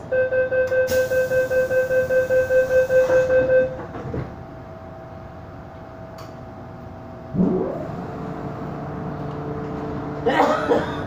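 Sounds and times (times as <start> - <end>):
train motor low hum: 0.6 - 10.3.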